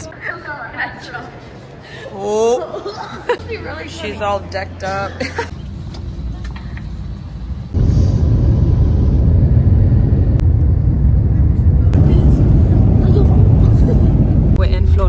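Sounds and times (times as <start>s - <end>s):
jet airliner cabin rumble: 6.0s - 15.0s.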